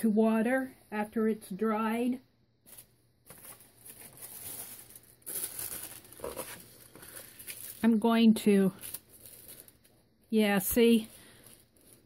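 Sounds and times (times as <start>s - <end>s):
paper and plastic rustling: 2.7s - 8.0s, 8.7s - 10.0s, 10.7s - 12.0s.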